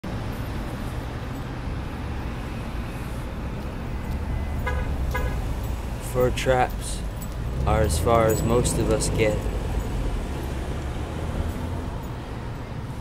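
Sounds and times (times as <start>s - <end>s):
low rumble of traffic: 0.0s - 13.0s
car horn toots: 4.4s - 5.6s.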